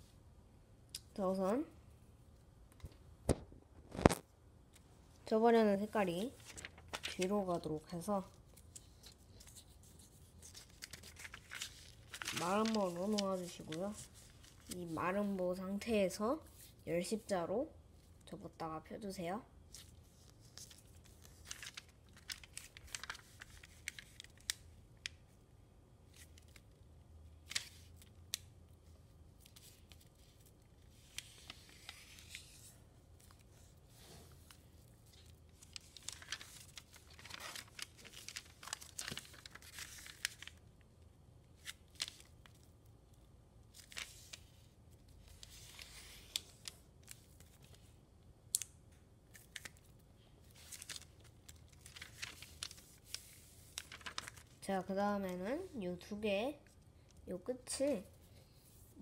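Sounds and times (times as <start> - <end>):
foil paper crinkling: 6.2 - 7.3, 8.8 - 14.9, 20.4 - 24.6, 34.0 - 40.6, 49.4 - 54.6
paper rustling sweeps: 9.0 - 15.1, 51.8 - 54.5.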